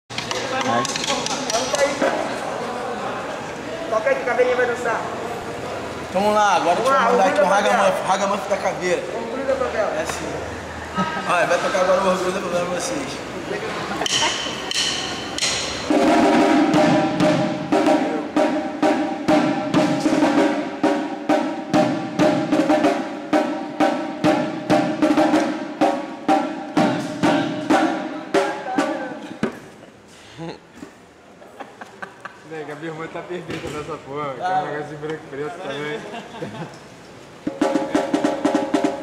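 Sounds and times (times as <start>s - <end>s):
drumsticks beating drums: 0.1s - 2.2s, 14.0s - 29.7s, 37.4s - 39.0s.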